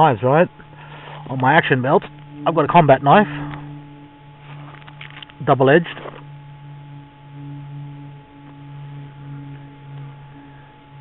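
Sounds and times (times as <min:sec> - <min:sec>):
high thin whine: 0:00.0 - 0:11.0
steady low hum: 0:00.0 - 0:11.0.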